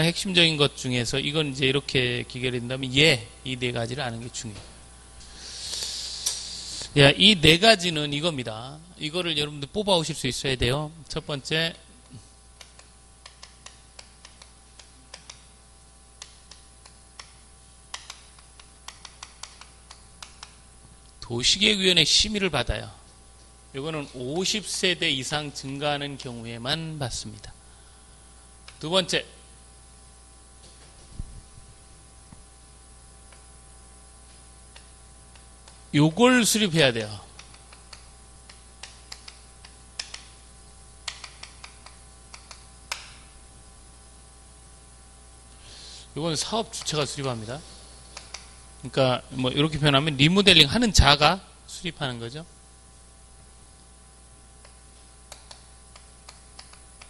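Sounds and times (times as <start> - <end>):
chalk clicking on a blackboard: 12.6 - 15.5, 16.2 - 20.6, 37.3 - 40.4, 41.0 - 43.2, 48.1 - 48.5, 54.6 - 56.9
chalk tapping on blackboard: 16.2 - 20.6, 41.1 - 43.2.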